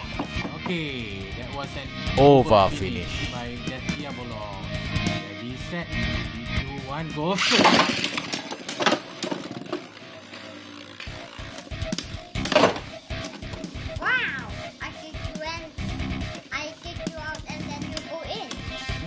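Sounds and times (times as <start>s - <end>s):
background music: 0.0s - 19.0s
spinning tops knocking together: 7.4s - 13.7s
child's voice: 14.0s - 19.0s.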